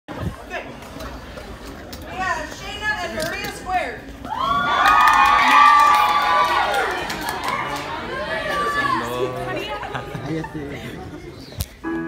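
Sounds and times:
crowd cheering and shouting: 4.2s - 10.2s.

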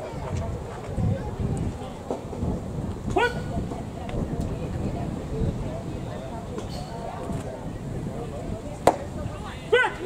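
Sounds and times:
faint voices: 0.0s - 10.0s
wind buffeting microphone: 0.0s - 10.0s.

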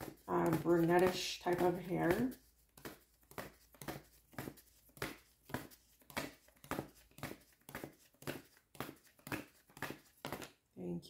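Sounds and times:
index cards being shuffled: 0.0s - 10.6s.

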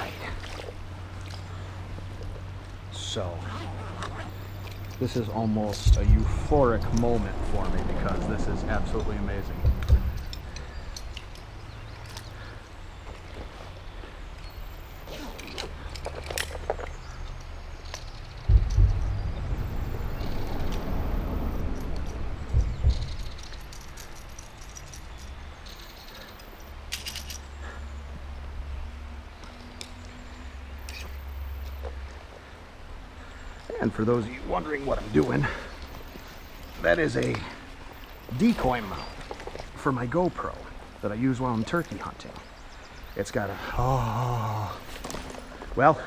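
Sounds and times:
heavy thump: 5.8s - 10.6s, 18.4s - 23.6s.

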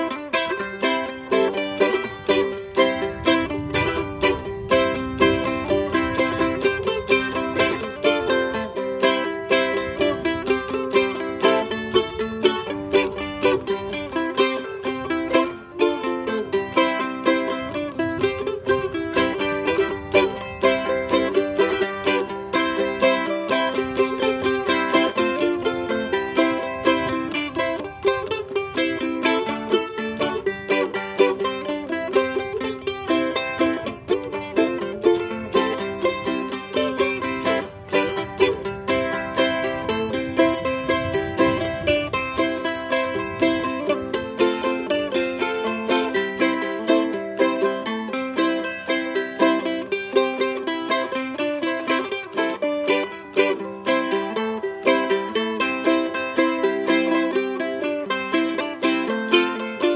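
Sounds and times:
ukulele playing: 0.0s - 59.9s.

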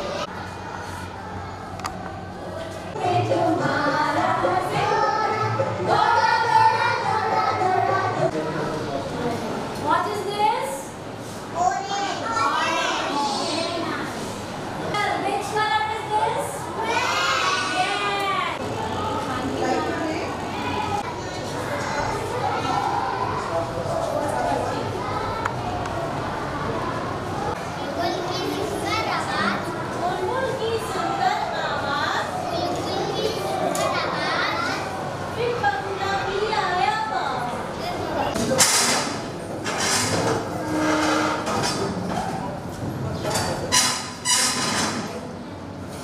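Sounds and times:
children chattering and calling out: 0.0s - 46.0s.

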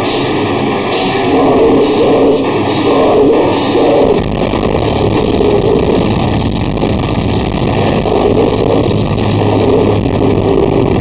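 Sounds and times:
heavy metal band playing live: 0.0s - 11.0s
low bass note: 0.9s - 11.0s.

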